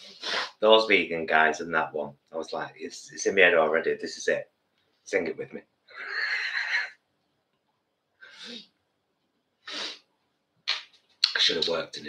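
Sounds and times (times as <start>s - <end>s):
man's squealing laughter: 5.9s - 7.0s.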